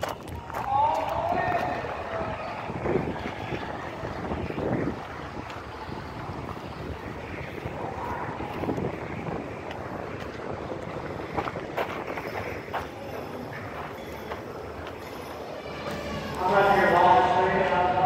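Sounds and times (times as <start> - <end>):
outdoor background noise: 0.0 - 18.0
wind buffeting microphone: 0.0 - 18.0.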